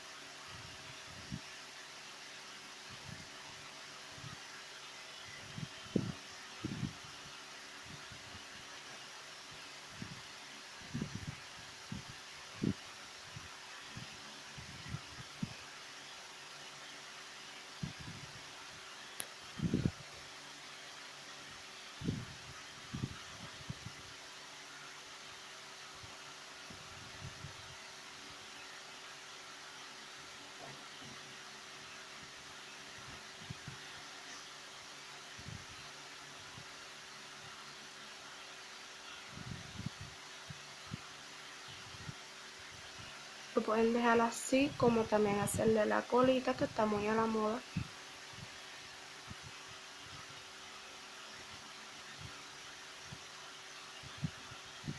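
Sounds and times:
fan-like hiss: 0:00.0 - 0:54.9.

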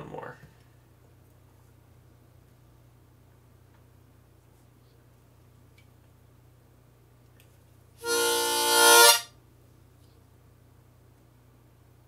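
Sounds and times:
harmonica held note: 0:08.0 - 0:09.3.

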